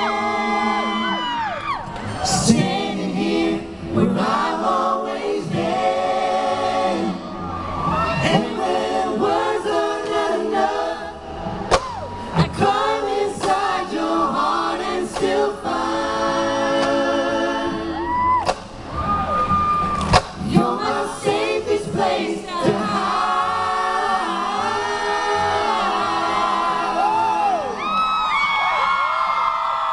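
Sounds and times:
male vocal group singing a cappella: 0.0s - 1.4s, 2.1s - 7.4s, 8.1s - 11.4s, 12.4s - 18.0s, 20.4s - 27.8s
audience noise: 5.6s - 9.4s, 11.0s - 15.4s, 16.8s - 21.2s.

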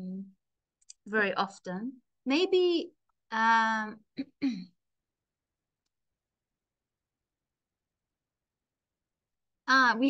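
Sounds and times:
woman clearing her throat: 4.2s - 4.7s.

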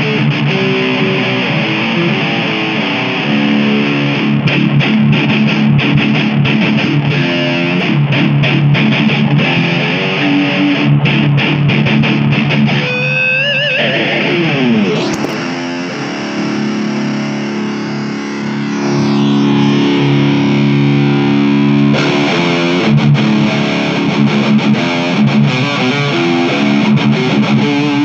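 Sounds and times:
electric guitar: 0.0s - 28.0s.

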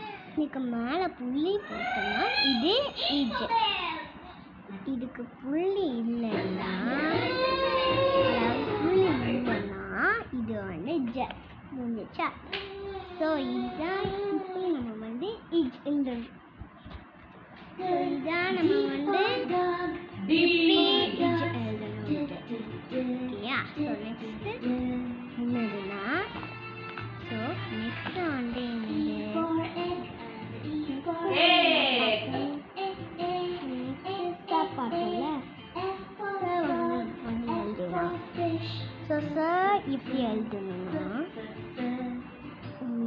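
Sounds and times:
girl singing long notes: 6.2s - 9.8s, 17.8s - 26.4s, 27.2s - 43.0s.

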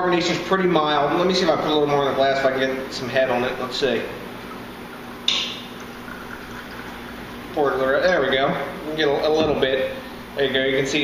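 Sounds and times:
beer pouring into glass: 3.3s - 8.6s.

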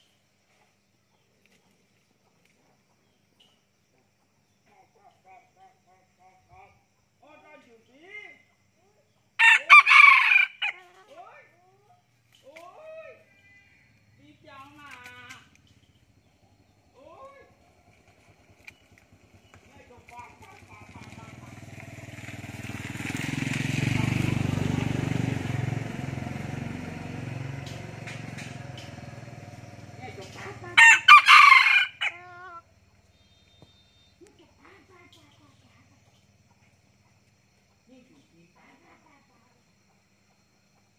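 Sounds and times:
rooster crowing: 9.4s - 10.8s, 30.8s - 32.5s.

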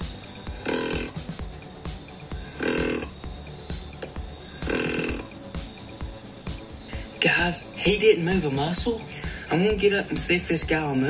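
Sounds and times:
background music: 0.0s - 11.0s
deer grunt call: 0.5s - 1.4s, 2.4s - 3.2s, 4.5s - 5.3s.

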